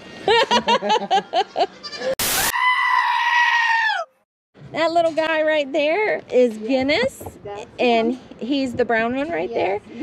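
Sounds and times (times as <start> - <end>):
goat bleating: 1.8 - 2.2.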